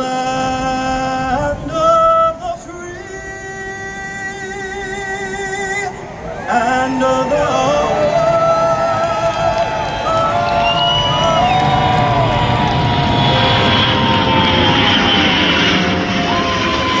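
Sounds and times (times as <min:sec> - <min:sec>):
jet aircraft flying overhead: 0:00.0 - 0:17.0.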